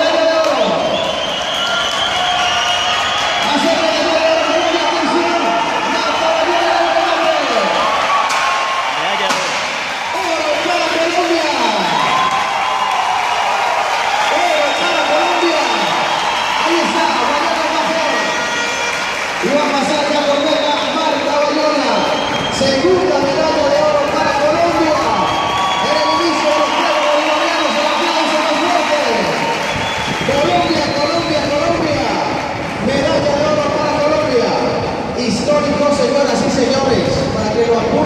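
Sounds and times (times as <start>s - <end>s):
crowd shouting and cheering: 0.0s - 38.0s
sharp bangs: 9.2s - 10.5s.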